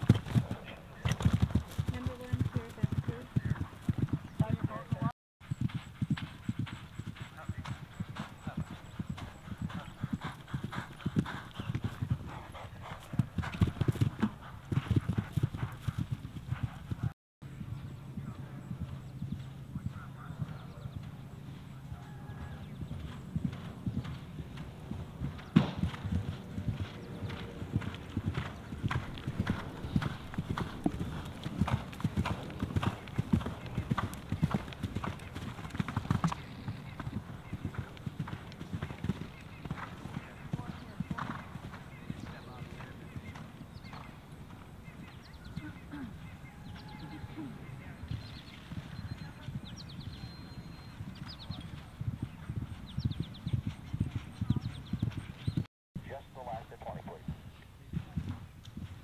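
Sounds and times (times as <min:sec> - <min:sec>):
horses galloping on grass: 0:00.0 - 0:59.0.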